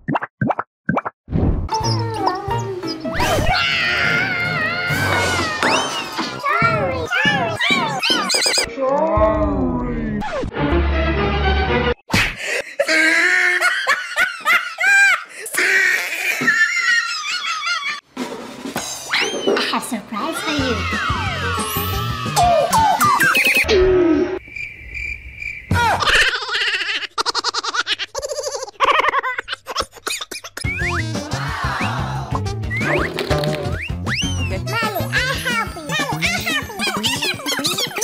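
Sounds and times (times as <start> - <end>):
music: 1.7 - 8.0, 10.1 - 12.0, 20.6 - 23.2, 30.7 - 37.9
swooping cartoon chirps: 7.6 - 8.7, 21.4 - 25.7, 32.6 - 35.0
cricket-like chirping: 24.4 - 25.8.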